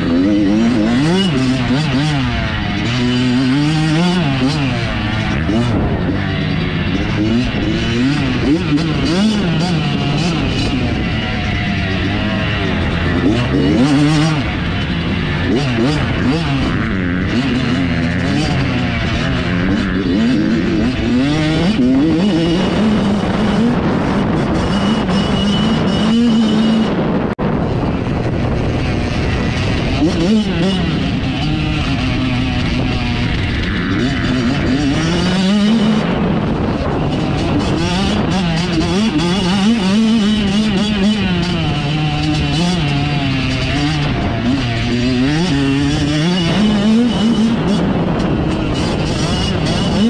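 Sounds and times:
dirt bike engine revving: 0.0s - 50.0s
wind rushing over microphone: 0.0s - 50.0s.

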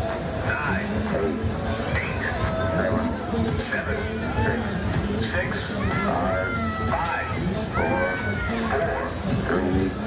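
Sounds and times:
fairground ride machinery running: 0.0s - 10.0s
riders' voices: 0.0s - 10.0s.

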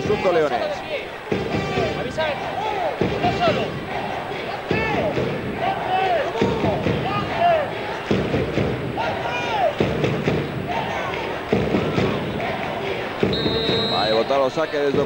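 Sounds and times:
crowd chanting and singing: 0.0s - 15.0s.

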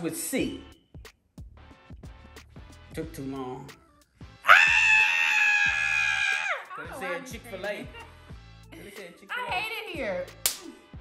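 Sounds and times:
background music with beat: 0.0s - 5.1s, 5.7s - 11.0s
woman screaming: 4.4s - 7.0s.

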